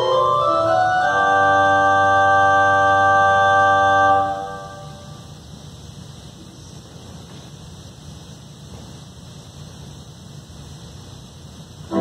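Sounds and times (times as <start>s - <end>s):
pipe organ chord: 0.0s - 5.3s
low hiss: 0.0s - 12.0s.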